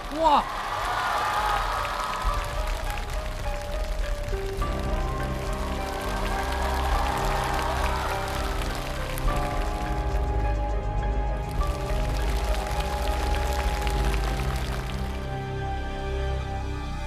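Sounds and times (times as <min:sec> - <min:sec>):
held drawn-out chords: 0:02.3 - 0:17.0.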